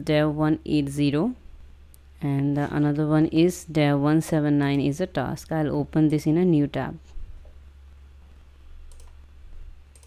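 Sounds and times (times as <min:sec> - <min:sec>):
low steady hum: 0:00.0 - 0:10.0
computer mouse clicks: 0:08.8 - 0:09.2.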